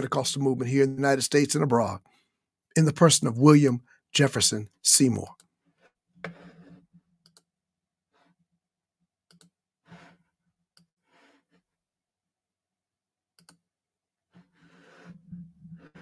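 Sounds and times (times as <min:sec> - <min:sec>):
computer mouse clicks: 0:07.2 - 0:07.5, 0:09.3 - 0:09.6, 0:13.4 - 0:13.6.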